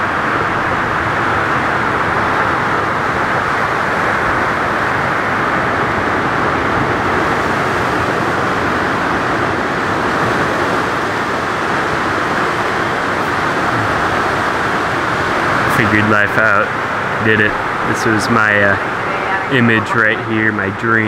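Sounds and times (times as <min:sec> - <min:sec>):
ocean surf breaking: 0:00.0 - 0:21.0.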